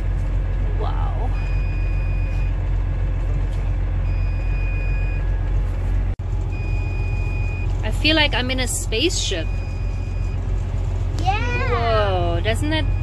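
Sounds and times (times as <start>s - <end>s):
engine idling: 0.0s - 13.0s
high electronic warning beep: 6.5s - 7.7s, 9.1s - 10.5s, 12.5s - 13.0s.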